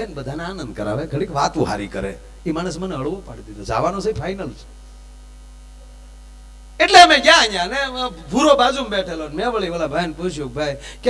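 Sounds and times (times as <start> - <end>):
electrical mains hum: 0.0 - 11.0
man speaking loudly: 6.8 - 10.9.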